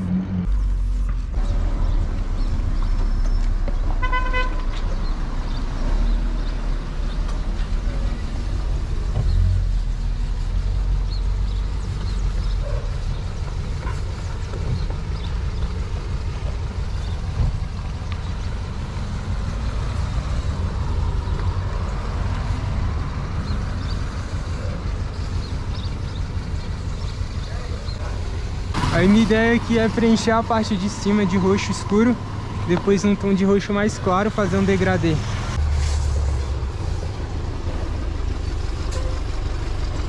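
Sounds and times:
low outdoor rumble: 0.0s - 40.0s
vehicle horn toot: 4.0s - 4.8s.

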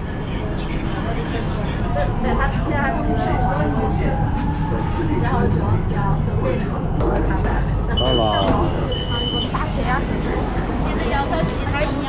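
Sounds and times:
train low rumble: 0.0s - 12.0s
voices: 0.2s - 12.0s
train door warning beeps: 7.9s - 9.7s.

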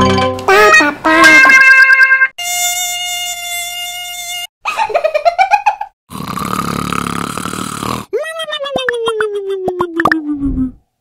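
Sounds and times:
buzzing rasp: 2.4s - 4.5s.

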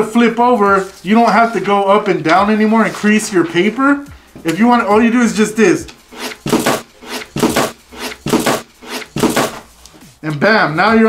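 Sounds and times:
clipboards flipping: 5.9s - 10.1s.

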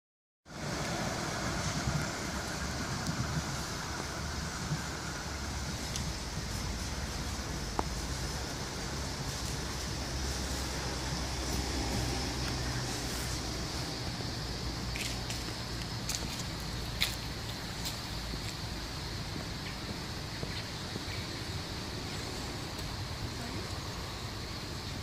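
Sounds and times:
distant traffic rumble: 0.5s - 25.0s
far-off tram moving: 0.5s - 25.0s.

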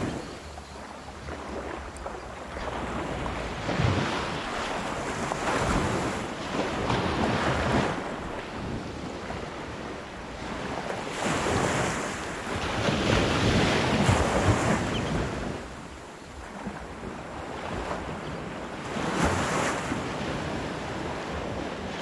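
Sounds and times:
waves washing on sandy beach: 0.0s - 22.0s
wind on microphone: 0.0s - 22.0s.

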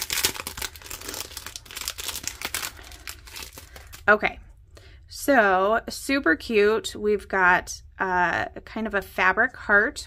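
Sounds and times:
plastic packet crinkling: 0.0s - 4.1s.

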